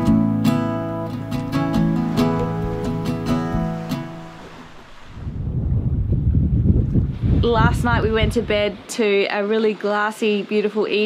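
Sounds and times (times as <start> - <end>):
wind buffeting microphone: 1.3 - 9.2.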